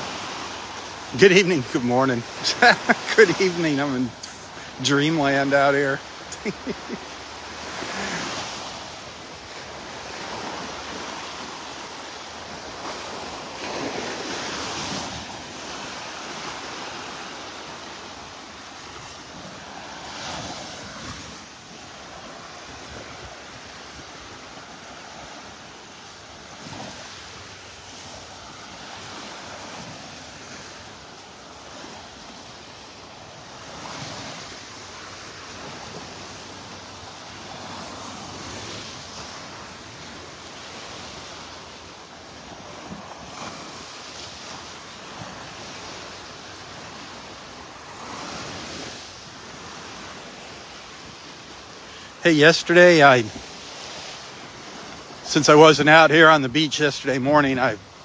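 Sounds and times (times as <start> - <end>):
small waves breaking on sand: 0.0 - 58.0.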